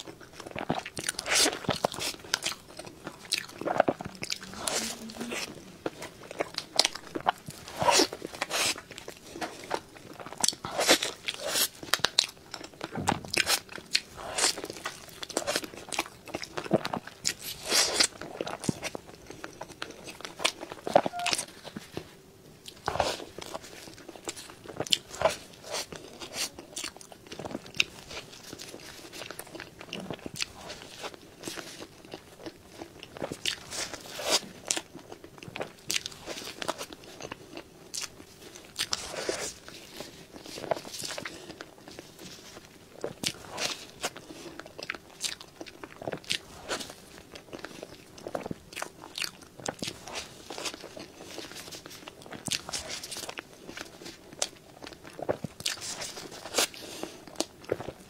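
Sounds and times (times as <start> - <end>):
person chewing cake: 0.0 - 58.0.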